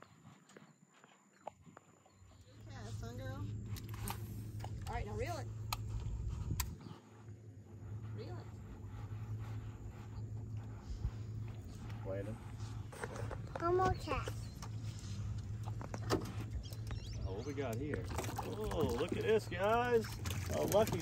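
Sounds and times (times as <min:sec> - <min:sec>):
electric trolling motor hum: 0:02.2 - 0:21.0
small child's voice: 0:13.5 - 0:14.6.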